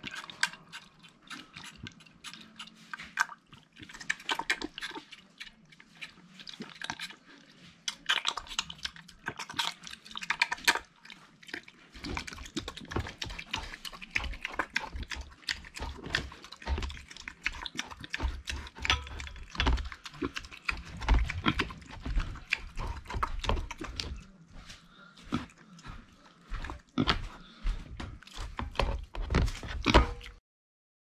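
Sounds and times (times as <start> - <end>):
pig licking a metal bowl: 0.0 - 30.4.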